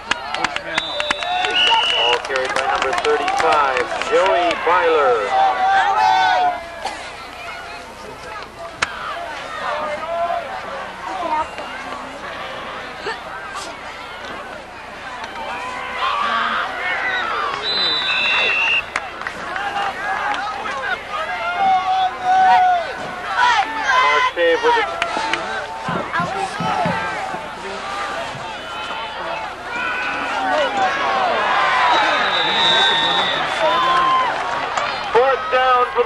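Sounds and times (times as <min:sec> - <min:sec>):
crowd yelling and cheering: 0:00.0 - 0:36.0
short whistle blast: 0:17.6 - 0:18.9.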